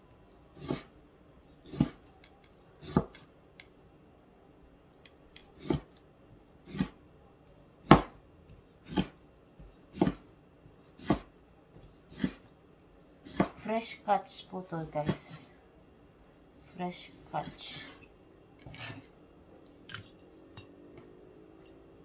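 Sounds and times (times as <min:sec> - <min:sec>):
cleaver chopping on wooden board: 0:01.6 - 0:02.0, 0:02.8 - 0:03.2, 0:05.4 - 0:05.9, 0:07.8 - 0:08.2, 0:08.8 - 0:10.3, 0:11.0 - 0:12.5, 0:13.3 - 0:13.6.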